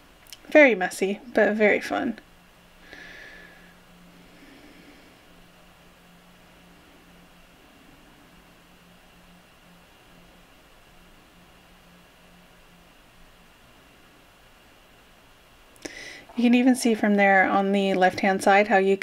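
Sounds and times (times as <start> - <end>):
faint steady hiss: 0.0 - 19.0
low hum: 0.0 - 19.0.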